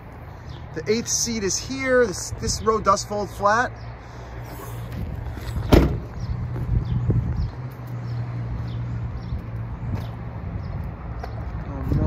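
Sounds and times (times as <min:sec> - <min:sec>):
car door shutting thump: 0:05.6 - 0:06.1.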